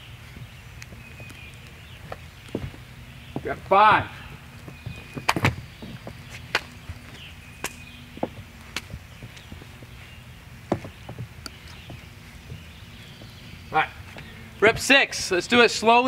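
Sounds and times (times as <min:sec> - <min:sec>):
footsteps on wooden deck: 0:00.0 - 0:16.0.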